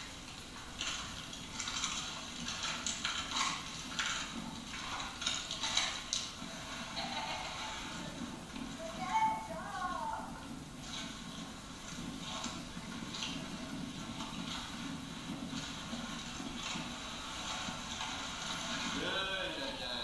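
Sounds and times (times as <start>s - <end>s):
distant people talking: 19.0s - 20.0s.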